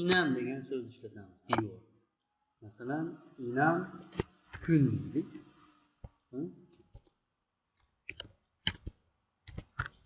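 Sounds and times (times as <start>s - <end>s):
computer keyboard keystrokes: 6.9s - 7.1s, 8.1s - 10.0s.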